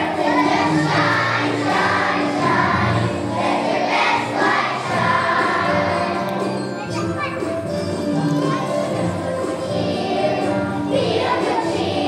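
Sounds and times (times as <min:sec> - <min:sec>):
children's choir singing: 0:00.0 - 0:06.7, 0:08.3 - 0:12.0.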